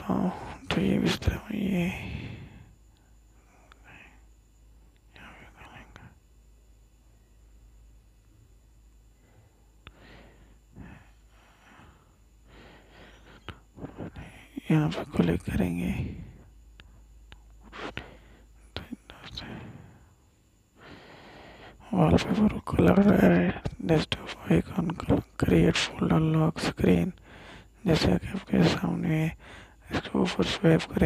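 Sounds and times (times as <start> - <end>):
faint whispered speech: 0.0 - 2.3, 5.1 - 6.2, 13.4 - 16.5, 18.7 - 19.9
person breathing faintly: 1.8 - 4.6, 9.0 - 21.8, 27.2 - 27.8, 29.4 - 29.8
mouth noises: 12.5 - 19.9.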